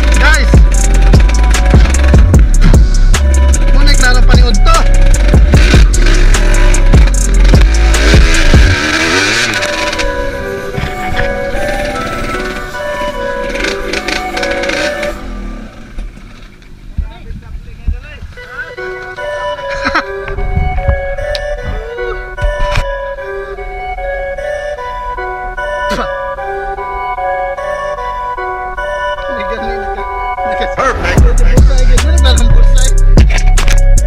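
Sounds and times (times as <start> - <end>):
background music: 0.0 - 16.9, 18.2 - 34.0
dirt bike engine: 0.0 - 34.0.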